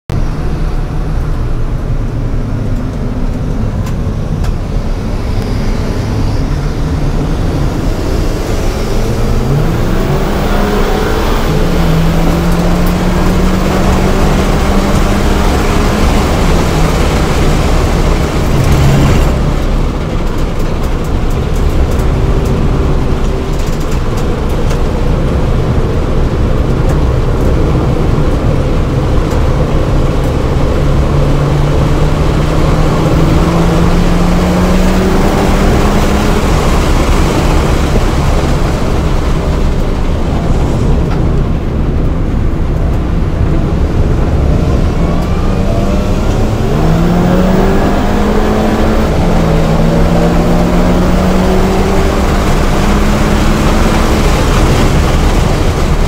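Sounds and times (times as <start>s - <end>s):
car engine accelerating hard: 0.1s - 56.0s
wind and road noise: 0.1s - 56.0s.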